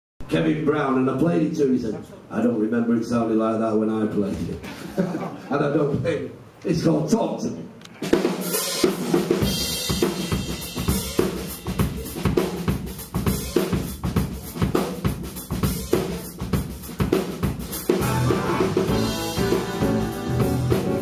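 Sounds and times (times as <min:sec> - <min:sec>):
drum kit beat: 0:08.0 - 0:21.0
bass: 0:15.4 - 0:21.0
electric guitar: 0:17.9 - 0:21.0.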